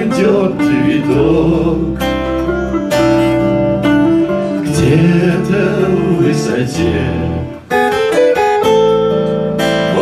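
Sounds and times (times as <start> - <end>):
acoustic and electric guitars: 0.0 - 10.0.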